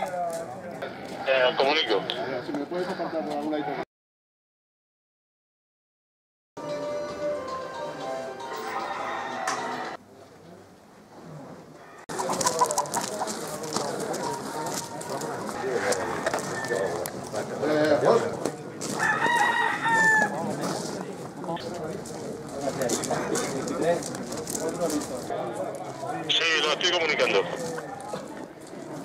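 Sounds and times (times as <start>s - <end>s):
music: 6.6s - 10.0s
roosters crowing: 8.5s - 10.0s, 14.2s - 17.2s, 18.8s - 20.6s.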